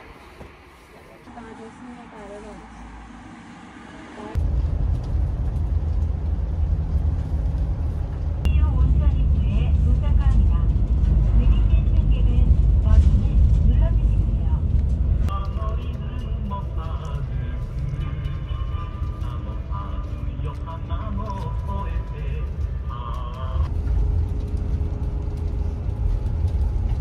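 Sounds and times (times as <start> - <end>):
bus engine and tyre rumble: 0.0 - 27.0.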